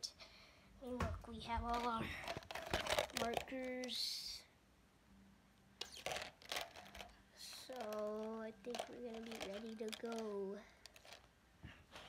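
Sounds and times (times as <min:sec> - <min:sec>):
faint steady hum: 0:00.0 - 0:12.0
handling noise on phone microphone: 0:01.6 - 0:03.9, 0:05.8 - 0:12.0.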